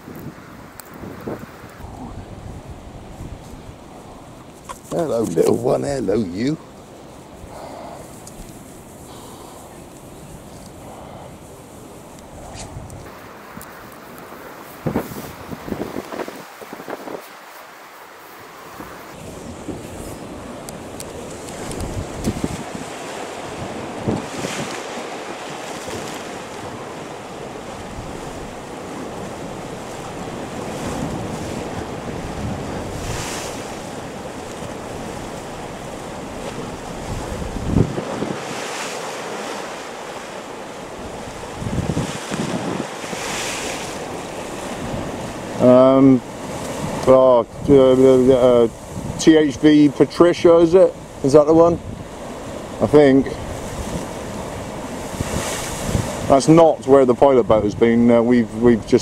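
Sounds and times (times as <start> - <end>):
wind buffeting microphone: 0.0 - 17.6, 18.5 - 59.0
surf breaking on rocks: 0.0 - 59.0.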